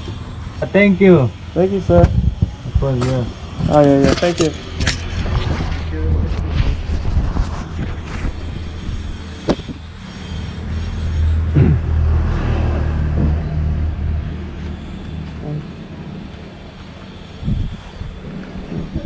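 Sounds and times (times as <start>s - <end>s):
vehicle engine rumbling past: 3.8s - 9.2s, 10.0s - 16.8s.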